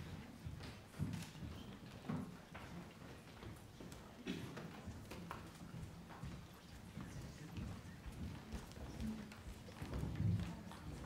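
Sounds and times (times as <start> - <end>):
low room murmur: 0.0 - 11.0.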